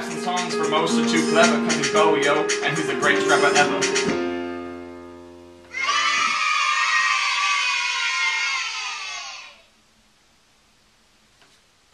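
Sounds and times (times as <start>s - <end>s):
digital piano notes ringing: 0.0s - 5.7s.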